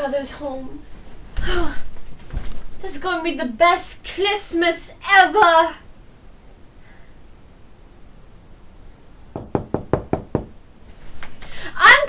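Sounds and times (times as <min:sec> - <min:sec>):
quick knocking on a door: 0:09.4 - 0:10.6.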